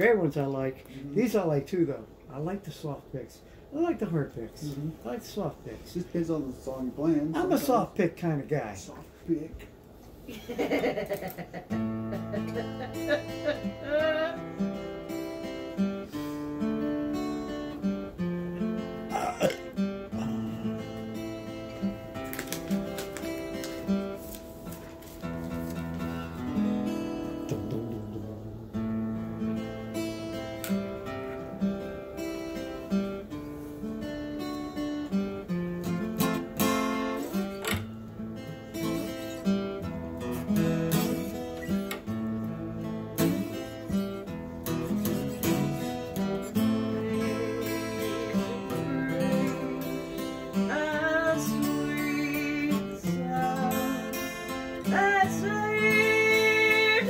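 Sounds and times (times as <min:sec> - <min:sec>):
acoustic guitar playing: 0:00.0 - 0:05.6, 0:06.8 - 0:08.9, 0:09.8 - 0:57.0.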